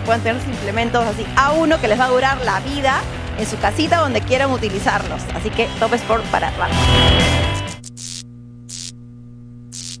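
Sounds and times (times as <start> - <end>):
electrical hum: 6.8 - 10.0
static crackles: 7.6 - 9.1, 9.7 - 10.0.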